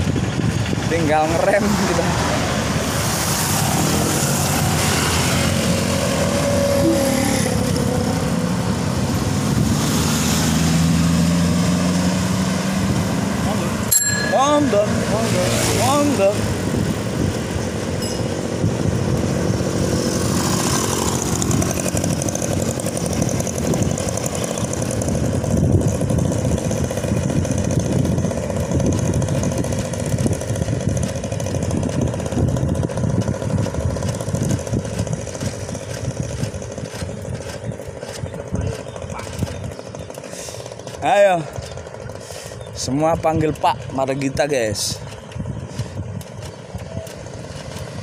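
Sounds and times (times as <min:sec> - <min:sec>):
passing engine: 0:00.0 - 0:48.0
tyre and road rumble: 0:00.0 - 0:48.0
wind buffeting microphone: 0:00.0 - 0:48.0.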